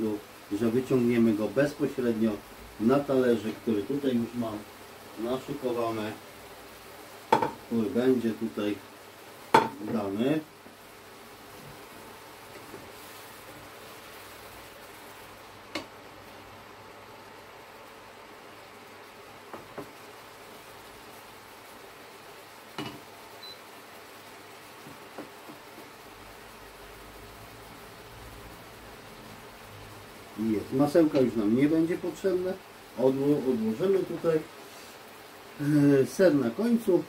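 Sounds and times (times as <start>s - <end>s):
faint knocks on pan: 7.3s - 7.6s, 9.5s - 10.0s, 19.5s - 20.0s, 22.8s - 23.0s, 24.8s - 25.9s.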